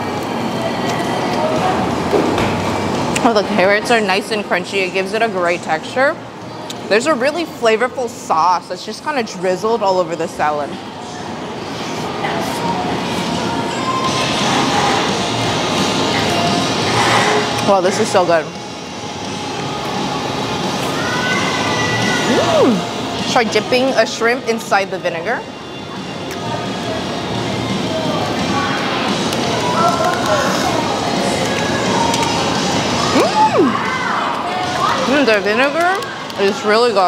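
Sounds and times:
background music: 8.6 - 36.4.

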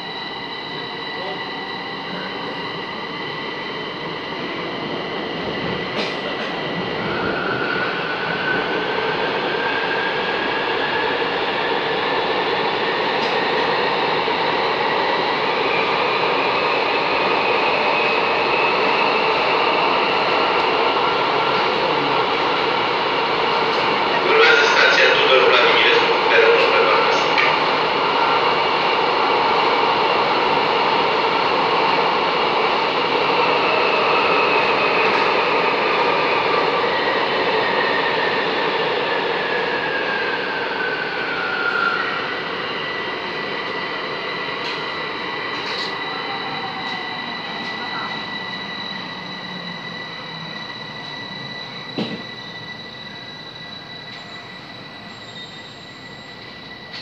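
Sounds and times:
train decelerating: 0.0 - 57.0.

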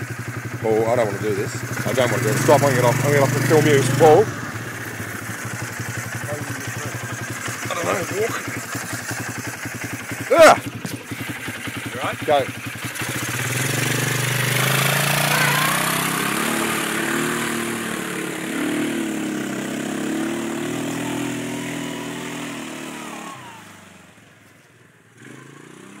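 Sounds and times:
quad bike engine revving: 0.0 - 26.0.

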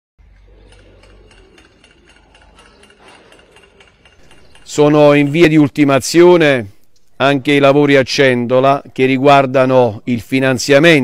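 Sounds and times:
light regular ticks: 0.3 - 5.2.

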